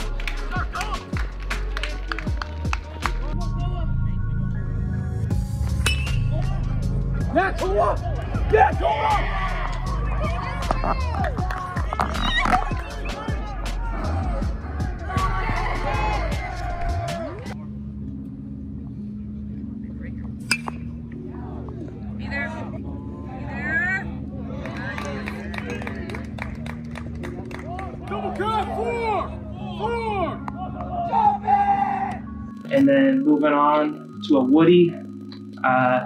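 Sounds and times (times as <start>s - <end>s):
background music: 0.0s - 36.0s
people shouting and calling: 6.2s - 17.6s, 27.7s - 32.4s.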